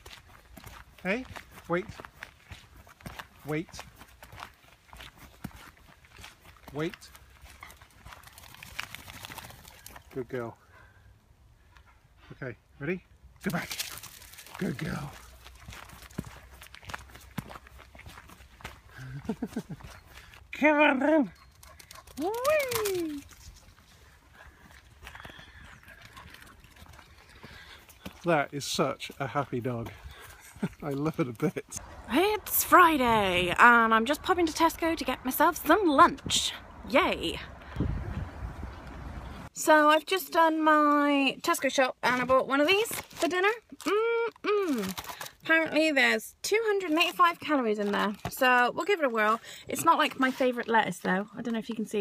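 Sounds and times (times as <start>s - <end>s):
footsteps on wet gravel: 0.0s - 10.3s, 13.4s - 20.6s, 23.0s - 34.7s
low microphone rumble: 36.2s - 39.5s.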